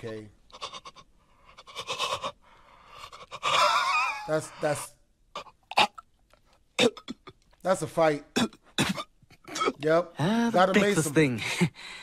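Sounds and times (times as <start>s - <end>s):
cartoon voice gasping and straining: 0.6s - 5.6s.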